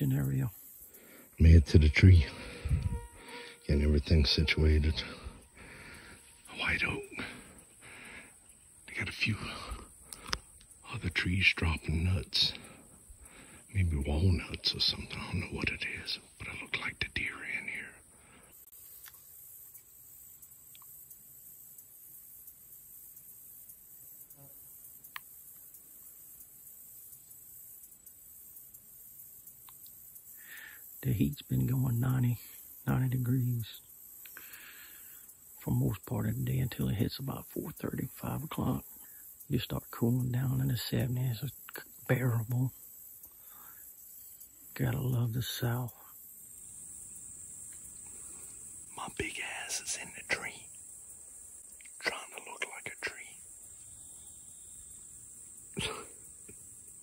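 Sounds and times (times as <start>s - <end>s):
insects chirring: 0.0s - 57.0s.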